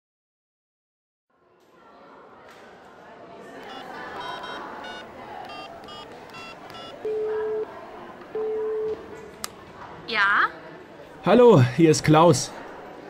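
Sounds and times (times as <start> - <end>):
background noise: 1.3 - 13.0
phone keypad beeps: 3.6 - 9.0.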